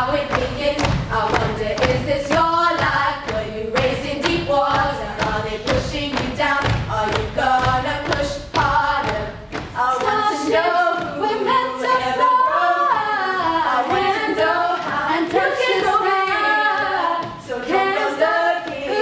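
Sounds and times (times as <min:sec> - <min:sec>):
girls singing a cappella in harmony: 0:00.0 - 0:19.0.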